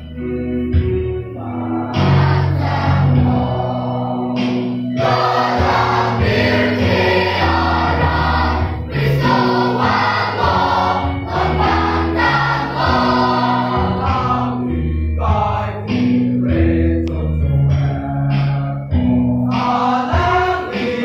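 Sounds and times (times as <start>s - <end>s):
youth choir singing: 1.4s - 17.2s, 19.5s - 21.0s.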